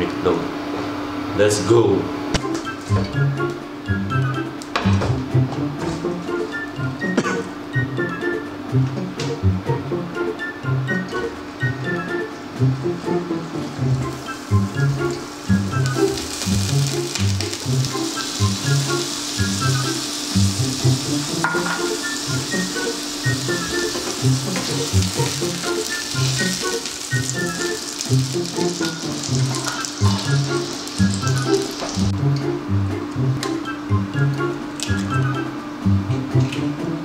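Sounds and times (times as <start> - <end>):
hot dogs sizzling in a frying pan: 12.6 - 32.3.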